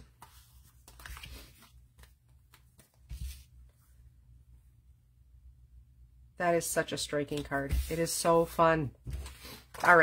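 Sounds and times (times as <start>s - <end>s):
paper rustling: 0.0s - 3.8s, 9.1s - 10.0s.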